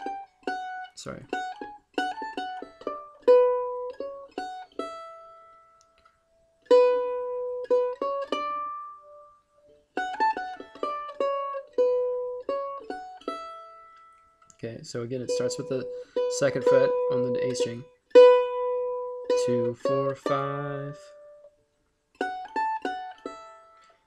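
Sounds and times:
mandolin melody: 0.0s - 24.0s.

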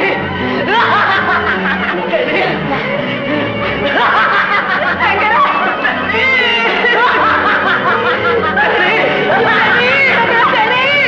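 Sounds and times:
film background music: 0.0s - 11.0s
man laughing wildly: 0.6s - 2.6s, 3.8s - 10.6s.

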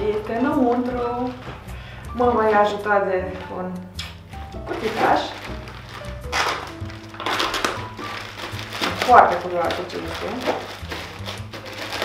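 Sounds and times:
plastic bag crinkling: 0.0s - 1.6s, 4.6s - 12.0s
background music: 0.0s - 12.0s
knife cutting plastic: 4.7s - 12.0s.

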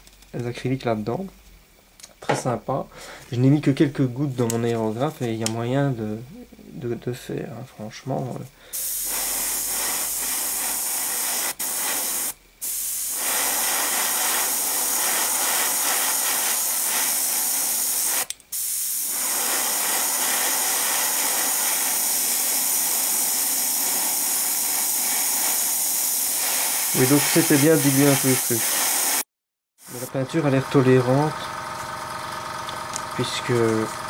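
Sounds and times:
airbrush spraying hiss: 8.7s - 30.2s.

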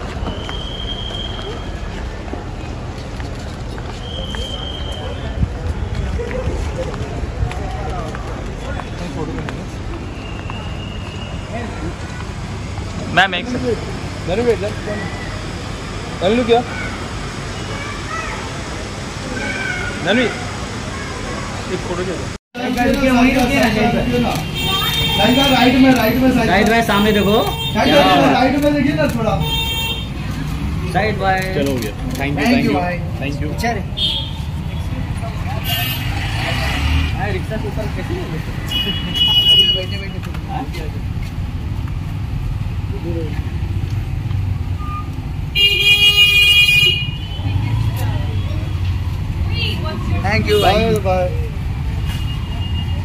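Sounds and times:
crowd murmur: 0.0s - 27.2s, 31.6s - 44.2s
idling engines and traffic rumble: 0.0s - 53.0s.

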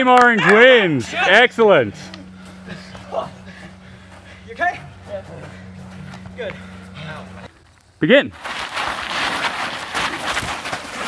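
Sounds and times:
steady low hum: 0.0s - 11.0s
person laughing: 1.9s - 4.1s.

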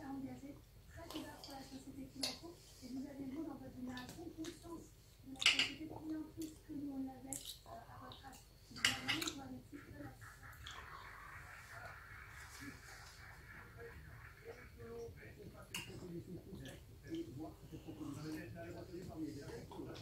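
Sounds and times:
indistinct murmuring voice: 8.8s - 20.0s.

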